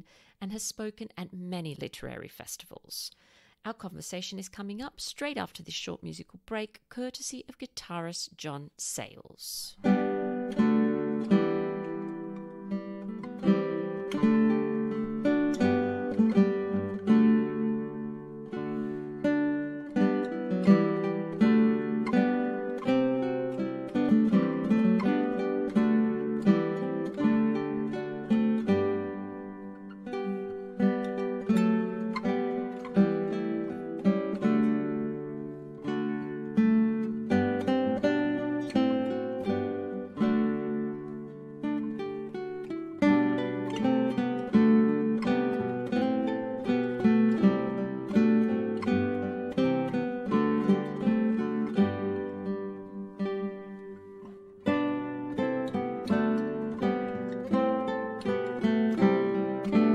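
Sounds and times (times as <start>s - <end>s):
acoustic guitar plucked notes: 9.8s - 59.9s.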